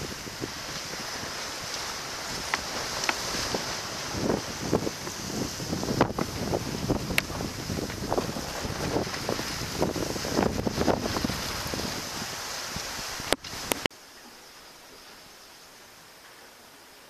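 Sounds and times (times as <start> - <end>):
sea splashing along hull: 0.0 - 13.9
waves breaking at bow: 0.0 - 13.9
wind buffeting microphone: 0.0 - 13.9.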